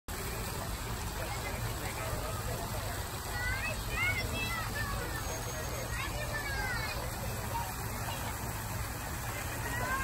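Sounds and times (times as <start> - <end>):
distant voices: 0.1 - 10.0
low rumble and hiss: 0.1 - 10.0.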